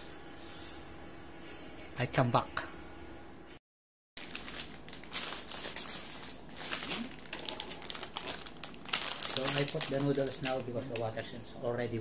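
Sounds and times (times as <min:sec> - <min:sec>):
plastic wrapper crinkling: 0:04.2 - 0:11.4.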